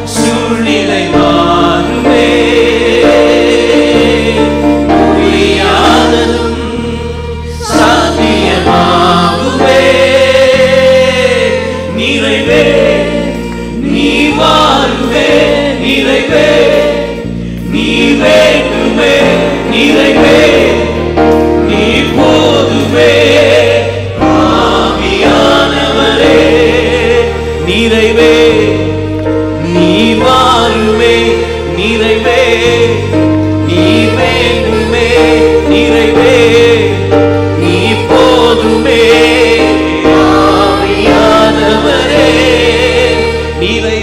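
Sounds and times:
bass: 0.0s - 44.0s
keyboard chords: 0.0s - 44.0s
worship band singing praise song: 0.0s - 44.0s.

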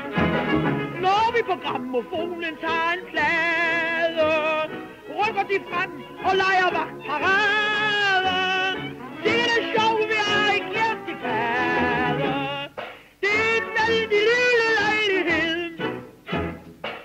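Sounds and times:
small dance orchestra: 0.0s - 17.0s
woman singing with vibrato: 1.1s - 15.8s.

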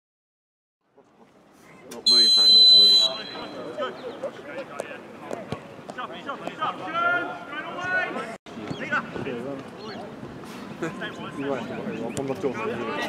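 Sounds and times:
voices calling out: 1.2s - 13.0s
referee's whistle blast: 2.1s - 3.7s.

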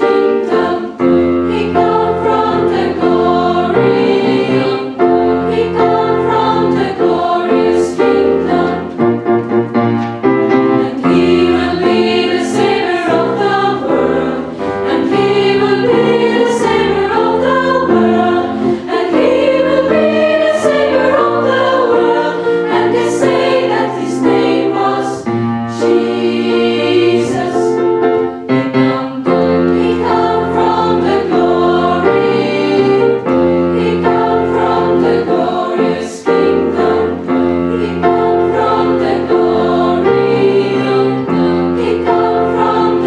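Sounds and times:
girls' choir singing: 0.0s - 9.2s, 10.3s - 43.0s.

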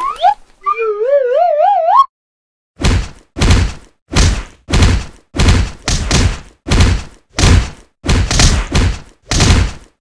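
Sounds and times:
warbling theremin-like tone: 0.0s - 2.1s.

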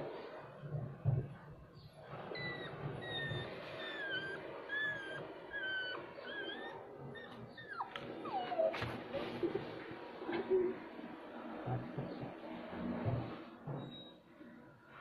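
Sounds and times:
dog whimpering: 2.2s - 9.4s.

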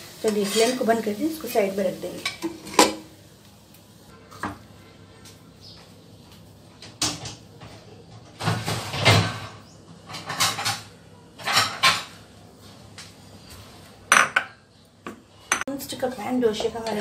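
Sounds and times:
kitchen containers clattering: 2.2s - 3.1s, 8.2s - 12.1s.

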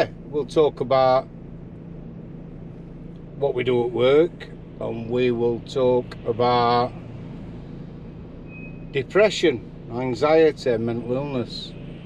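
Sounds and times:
road and engine noise in van: 0.0s - 12.0s.

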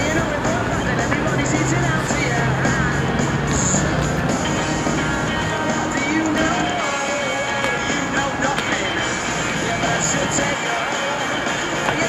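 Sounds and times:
distant outdoor concert music: 0.0s - 12.0s.

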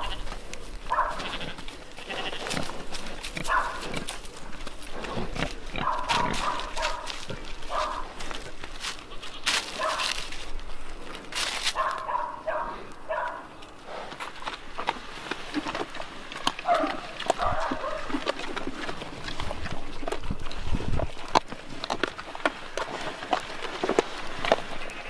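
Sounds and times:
pigs chewing at a trough: 0.0s - 25.0s
pigs grunting: 0.0s - 25.0s.

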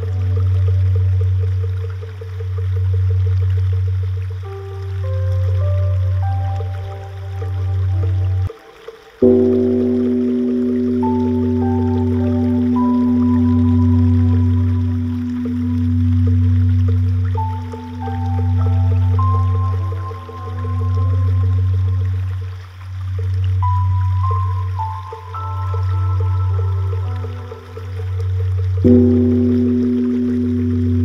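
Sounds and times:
ambient meditation music: 0.0s - 31.0s.

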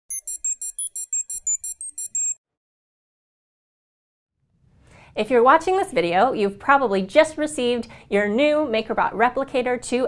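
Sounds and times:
electronic jingle of high beeps: 0.1s - 2.4s.

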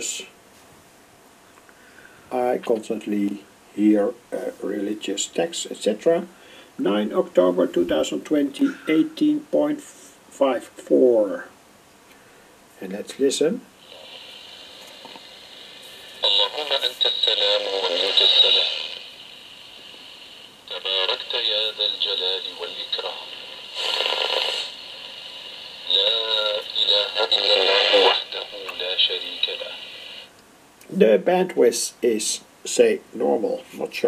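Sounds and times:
religious speech over radio: 0.0s - 0.3s, 2.3s - 11.5s, 12.8s - 14.1s, 15.8s - 19.2s, 20.7s - 25.0s, 25.7s - 30.3s, 31.0s - 34.0s
radio noise hiss: 0.0s - 0.4s, 1.8s - 11.6s, 12.7s - 34.0s
burst of radio noise: 13.8s - 30.3s.

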